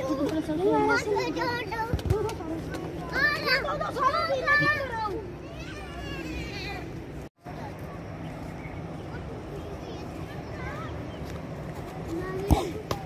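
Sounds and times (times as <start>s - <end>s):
children shouting: 3.1s - 6.9s.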